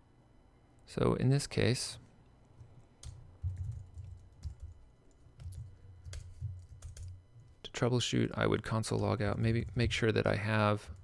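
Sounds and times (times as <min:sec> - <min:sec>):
computer keyboard typing: 0:02.6 - 0:07.5.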